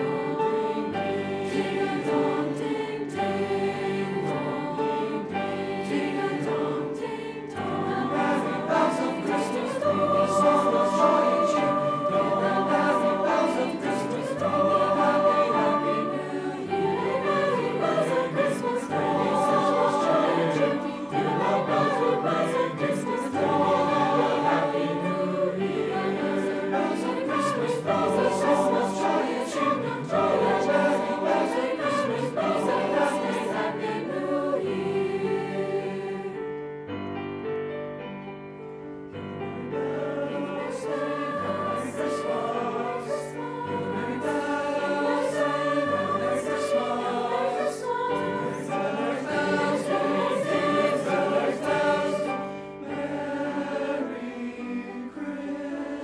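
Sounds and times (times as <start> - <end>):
mixed choir singing in harmony: 0.0 - 56.0.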